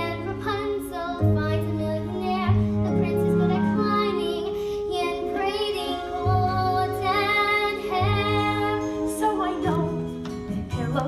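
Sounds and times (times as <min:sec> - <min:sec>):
girl singing: 0:00.0 - 0:11.0
instrumental accompaniment: 0:00.0 - 0:11.0.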